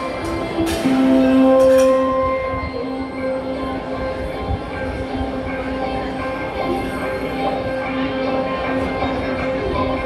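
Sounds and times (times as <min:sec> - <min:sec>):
electric guitar sustained drone: 0:00.0 - 0:10.0.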